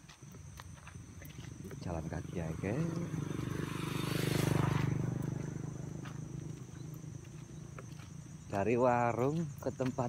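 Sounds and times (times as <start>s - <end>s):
small motorcycle passing: 1.1s - 9.6s.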